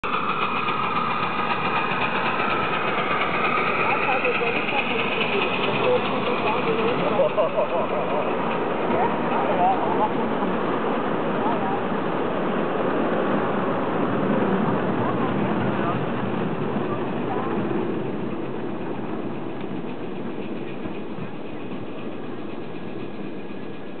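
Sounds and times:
train wheels rumbling on rails: 0.0 - 24.0.

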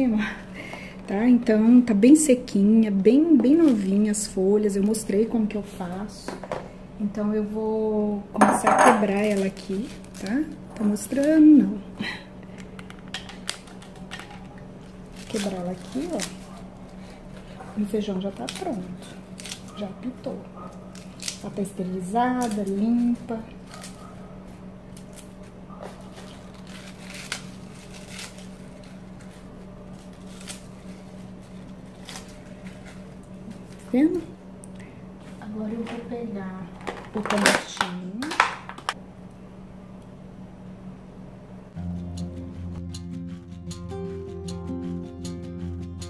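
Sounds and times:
steady low hum: 0.0 - 46.0
lettuce leaves tearing: 3.5 - 4.1, 9.1 - 11.4, 12.5 - 34.8.

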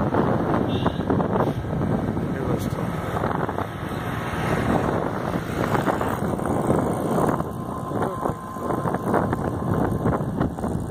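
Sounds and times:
motorcycle engine drone: 0.0 - 10.9
wind buffeting microphone: 0.0 - 10.9.

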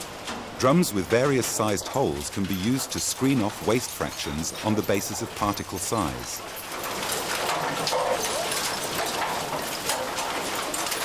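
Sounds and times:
waste clattering in rotating drum: 0.0 - 11.0.

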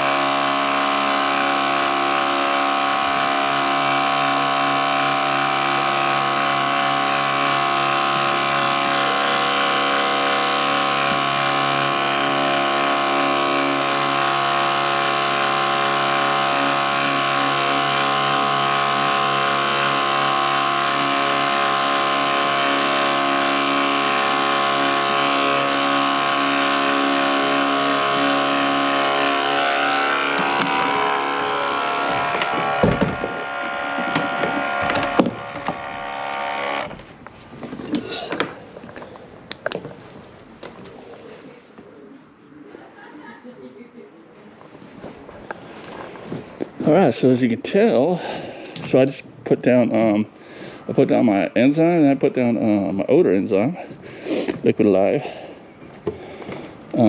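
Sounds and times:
sprayer pump motor whine: 0.0 - 39.8, 45.1 - 47.2.

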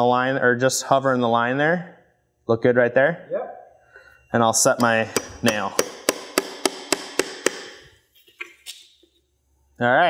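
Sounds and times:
hammer driving nail into wood: 4.8 - 8.0.

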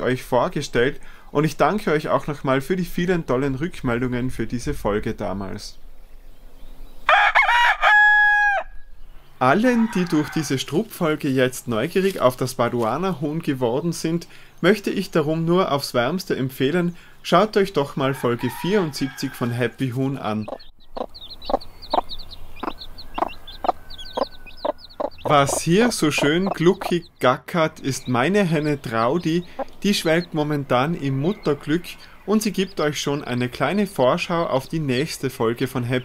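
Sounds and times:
rooster crowing: 7.1 - 8.9, 9.6 - 10.7, 18.0 - 19.9, 22.7 - 26.3
chick peeping: 9.4 - 36.0
hen clucking: 17.7 - 36.0.

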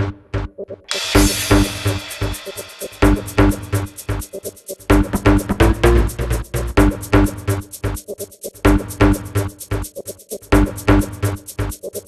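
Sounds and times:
electronic house music: 0.0 - 12.0
crash cymbal ringing: 0.9 - 4.2.

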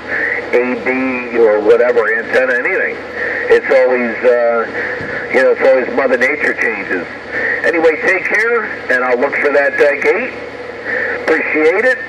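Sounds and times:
static hiss: 0.0 - 12.0
voice through radio speaker: 0.0 - 12.0.

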